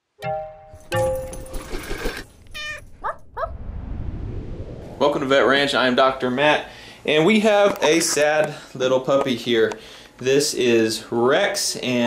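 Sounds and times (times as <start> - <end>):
dog yelping and yipping: 2.5 - 3.6.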